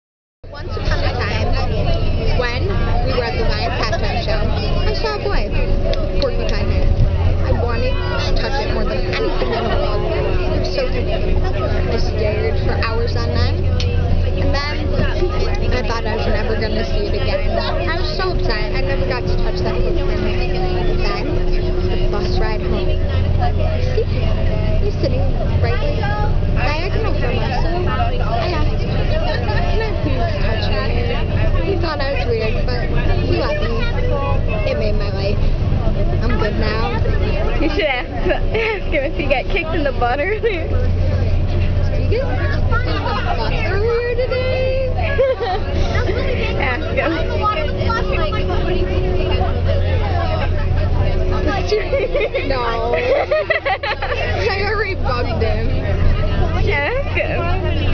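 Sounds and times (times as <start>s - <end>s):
bus engine and road rumble: 0.4s - 57.9s
people chattering: 0.4s - 57.9s.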